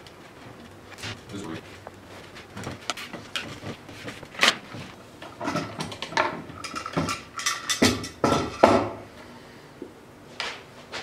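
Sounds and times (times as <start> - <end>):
wood and metal knocks: 7.8 - 9.0.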